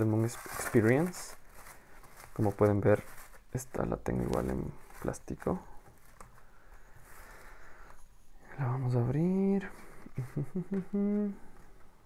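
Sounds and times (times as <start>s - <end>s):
plastic shrink-wrap rustling: 0.0s - 8.0s.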